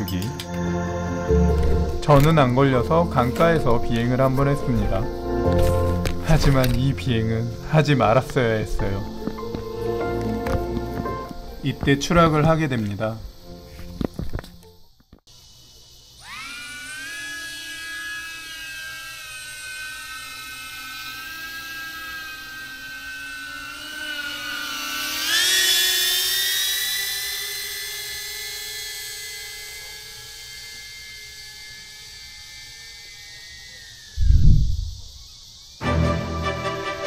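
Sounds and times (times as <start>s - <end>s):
drone propellers whining: 0.0s - 37.0s.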